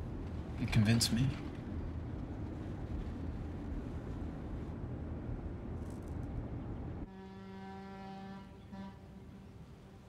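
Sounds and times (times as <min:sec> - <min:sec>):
boat horn blasts: 0:07.1 - 0:10.0.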